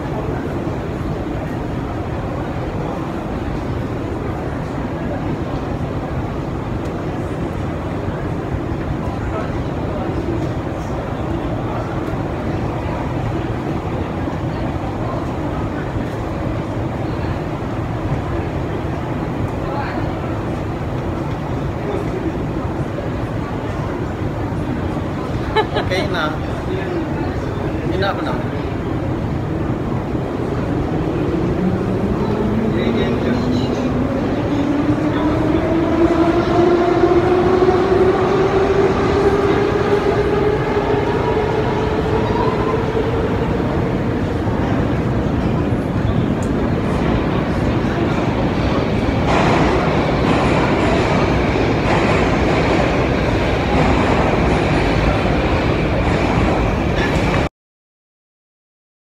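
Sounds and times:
train rumble: 0.0 - 57.5.

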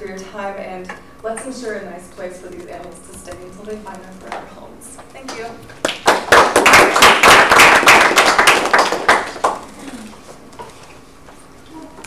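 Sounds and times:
audience applauding: 5.8 - 10.2.

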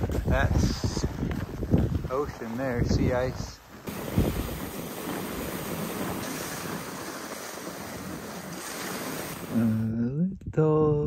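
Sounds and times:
wind rushing over microphone: 0.0 - 9.9.

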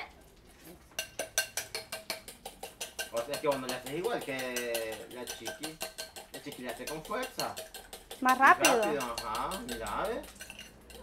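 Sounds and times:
utensil clinking against bowl: 0.9 - 11.0.

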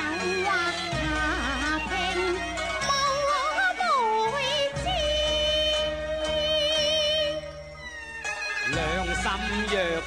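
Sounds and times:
opera singing with vibrato: 0.0 - 7.6
accompanying ensemble: 8.2 - 10.0.

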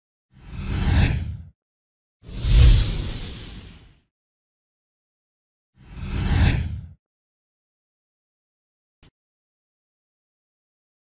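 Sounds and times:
whoosh over deep rumble: 2.3 - 3.9.

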